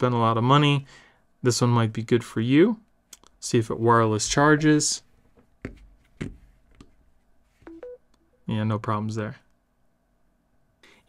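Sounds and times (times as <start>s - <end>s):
two-note electronic beep: 7.7s - 8.0s.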